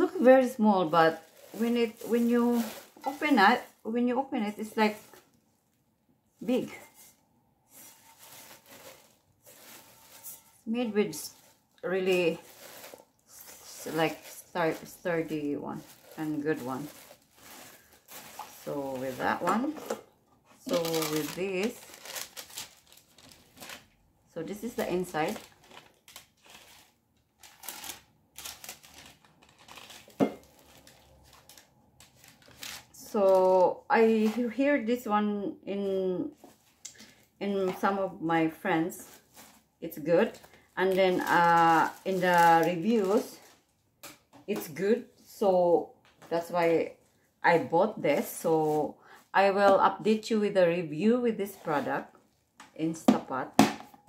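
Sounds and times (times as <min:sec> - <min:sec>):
plastic wrap crinkling: 0:00.0 - 0:05.8, 0:06.4 - 0:34.6, 0:38.6 - 0:43.8.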